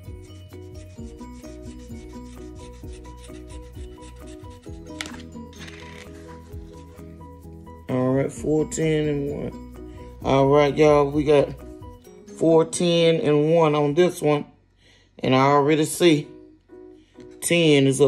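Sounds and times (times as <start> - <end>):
coin scratching lottery ticket: 0.0 - 7.1
background music: 0.0 - 18.0.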